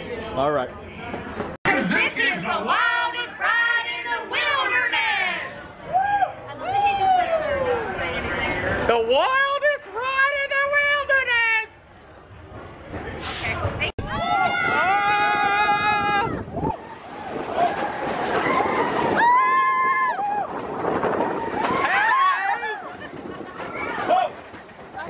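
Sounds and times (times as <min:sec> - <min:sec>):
roller coaster running: 0:00.1 - 0:25.0
riders screaming and whooping: 0:05.8 - 0:07.9, 0:14.0 - 0:24.5.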